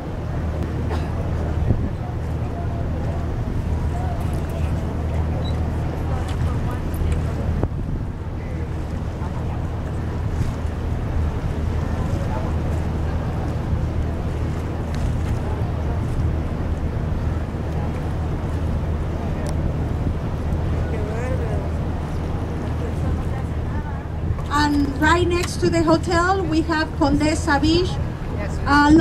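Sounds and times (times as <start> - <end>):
boat engine droning: 0.0 - 29.0
wind noise on microphone: 0.0 - 29.0.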